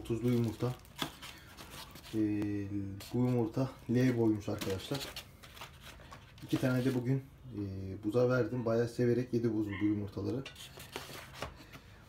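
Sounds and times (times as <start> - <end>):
faint rustling of plastic bag: 0.0 - 7.2.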